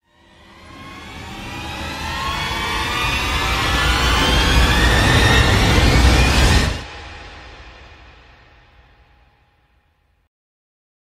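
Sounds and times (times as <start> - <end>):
rising drone: 0.0 - 8.8
deep rumble: 0.5 - 8.6.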